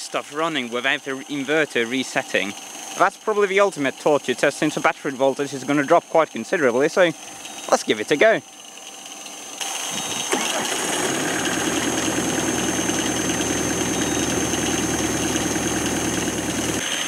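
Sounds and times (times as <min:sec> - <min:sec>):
starter cranking engine: 0:00.0 - 0:17.0
van engine idling: 0:00.0 - 0:17.0.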